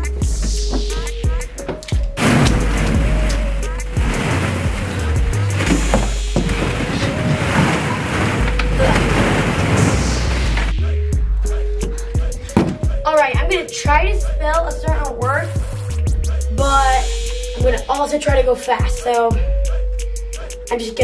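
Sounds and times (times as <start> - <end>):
background music with bass line: 0.0 - 21.0
plastic balls clattering: 1.8 - 9.8.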